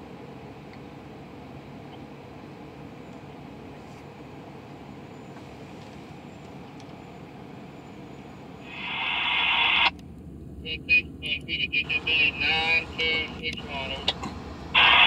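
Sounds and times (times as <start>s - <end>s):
steady low rumble: 0.0s - 15.0s
rising hiss: 8.6s - 9.9s
voices over scanner radio: 8.6s - 9.9s, 10.6s - 14.2s, 14.8s - 15.0s.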